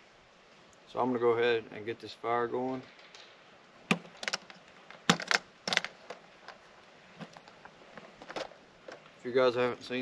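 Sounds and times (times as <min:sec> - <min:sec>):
hard objects knocking and clicking: 0:03.9 - 0:06.6.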